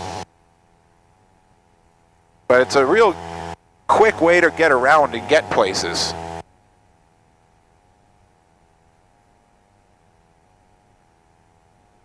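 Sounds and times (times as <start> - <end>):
aircraft engine drone: 0.0 - 12.0
faint steady hum: 0.0 - 12.0
cockpit speech: 2.5 - 3.2, 3.9 - 6.2.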